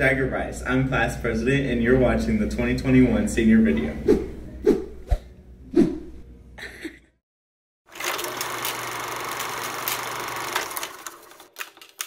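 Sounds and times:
fast mechanical rattling buzz: 7.9s - 11.5s.

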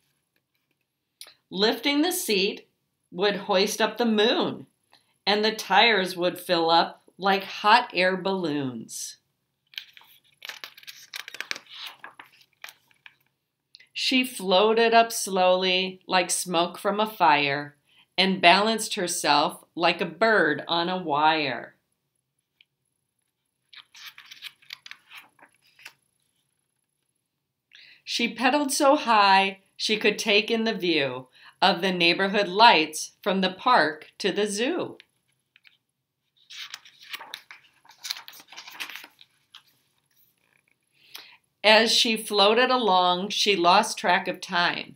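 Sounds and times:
book pages turning: 0.0s - 0.9s, 9.6s - 13.4s, 22.4s - 27.2s, 35.0s - 40.9s.

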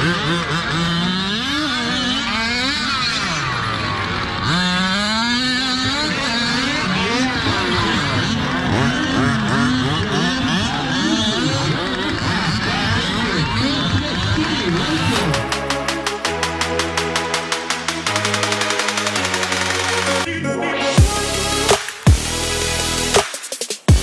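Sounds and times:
small two-stroke engines revving: 0.0s - 20.3s, 21.0s - 23.3s.

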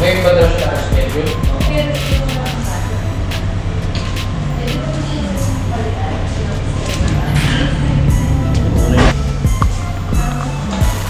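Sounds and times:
indistinct voices: 0.0s - 11.0s
music with steady bass line: 0.0s - 11.0s.

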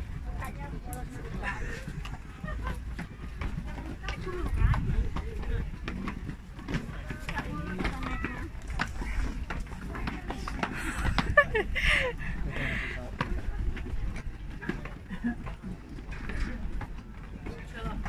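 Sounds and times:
chatter of voices: 0.0s - 18.0s.

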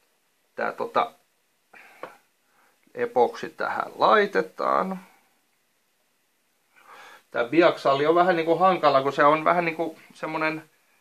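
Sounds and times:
faint intake of breath: 1.7s - 2.9s, 6.7s - 7.3s.

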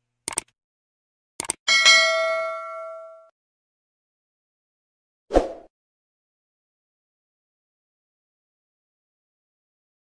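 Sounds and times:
double mouse clicks: 0.3s - 0.6s, 1.4s - 1.6s
notification bell ding: 1.7s - 3.3s.

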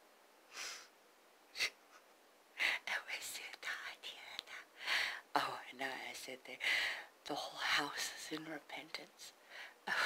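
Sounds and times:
person whispering: 2.6s - 4.7s.

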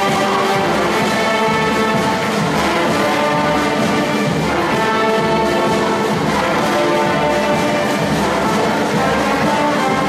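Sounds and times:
brass band playing samba: 0.0s - 10.0s.

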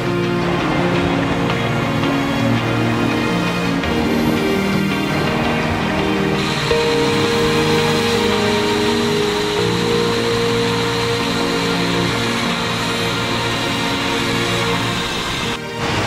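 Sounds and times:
slow held-note background music: 0.0s - 16.0s.

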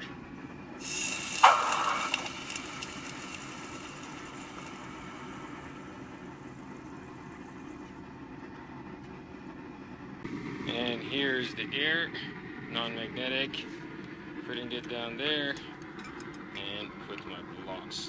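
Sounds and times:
hot steel sizzling in water: 0.8s - 7.9s.

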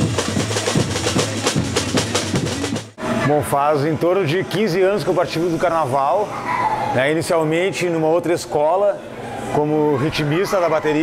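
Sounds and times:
samba percussion drumming: 0.0s - 3.0s
steady low drum note: 0.0s - 3.0s.

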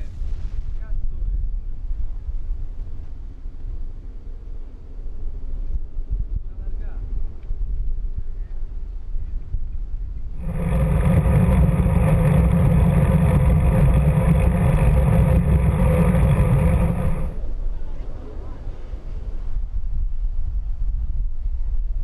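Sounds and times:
wind buffeting microphone: 9.4s - 17.7s
low outdoor rumble: 10.3s - 18.6s.

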